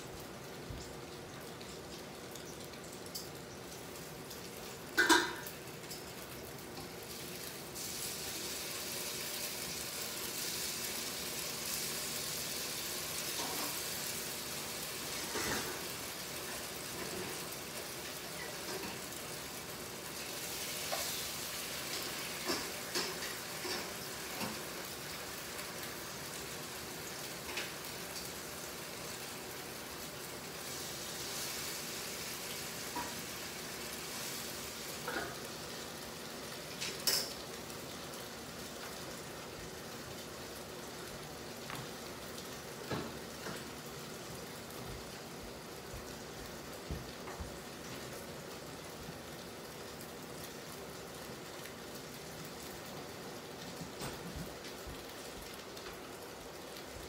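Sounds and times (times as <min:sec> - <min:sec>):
food sizzling in a pan: 0:00.0 - 0:57.0.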